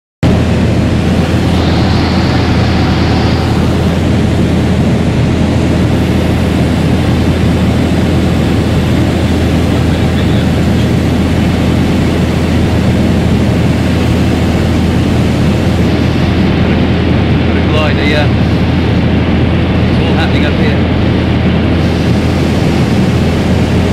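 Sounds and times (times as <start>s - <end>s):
aircraft piston engine drone: 0.2s - 23.9s.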